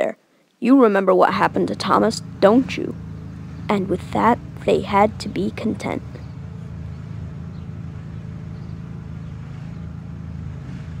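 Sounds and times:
engine idling: 1.3s - 11.0s.

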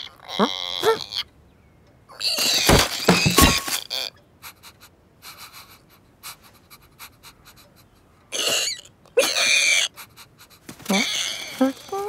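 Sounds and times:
person voicing animal noises: 0.0s - 1.3s, 10.8s - 12.0s.

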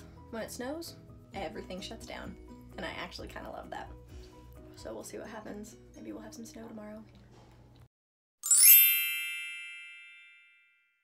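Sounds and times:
bright chime: 8.4s - 11.0s.

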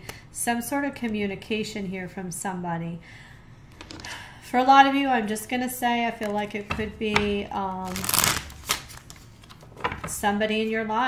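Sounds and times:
cards shuffling: 6.2s - 10.0s
cards tapping: 6.2s - 10.1s.

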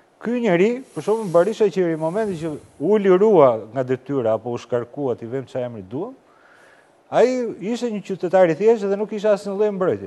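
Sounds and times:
faint high hiss: 0.0s - 10.0s
man talking: 0.2s - 6.2s, 7.1s - 10.0s.

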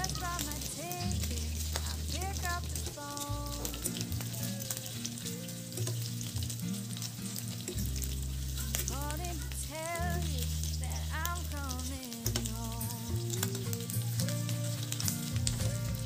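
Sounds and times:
background song: 0.0s - 6.3s, 8.8s - 16.0s
meat sizzling in oil: 0.0s - 16.0s.

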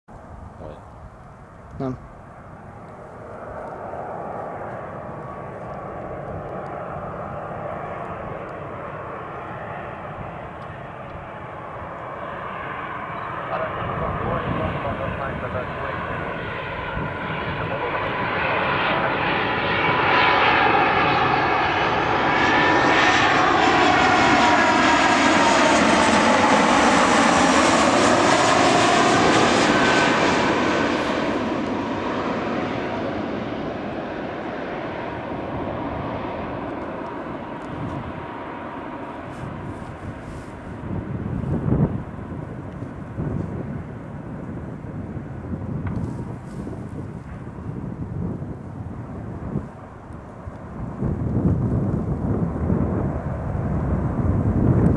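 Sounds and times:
jet passing overhead: 0.2s - 54.9s.

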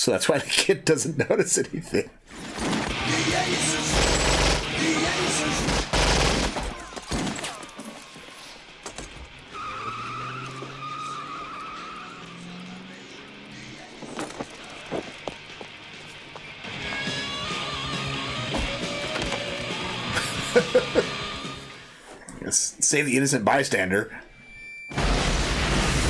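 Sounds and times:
rapid gunfire: 2.5s - 7.6s, 24.9s - 26.0s
crashing: 13.7s - 15.8s.

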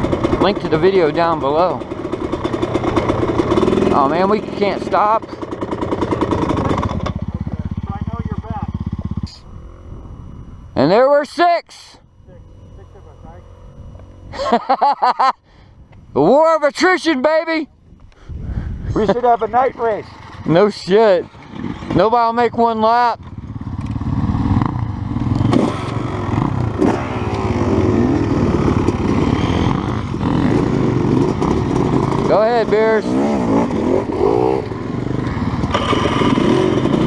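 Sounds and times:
dirt bike engine running: 0.0s - 37.0s.

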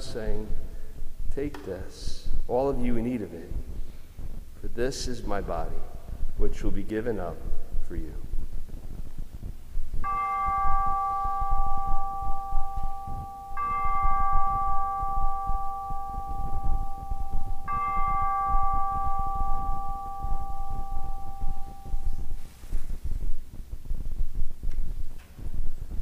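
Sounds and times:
bell ringing: 10.0s - 22.5s.

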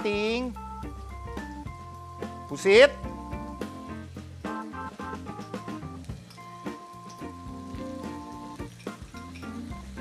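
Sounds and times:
background music: 0.0s - 10.0s
food sizzling in a pan: 0.0s - 10.0s.

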